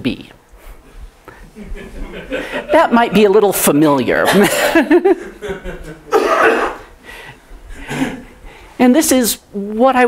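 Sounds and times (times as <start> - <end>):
woman laughing: 1.6 - 3.4, 4.2 - 6.2.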